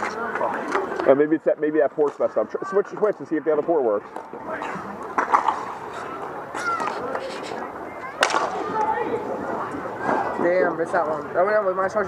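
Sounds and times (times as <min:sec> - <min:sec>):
indistinct voices and chatter: 0:00.0 - 0:12.0.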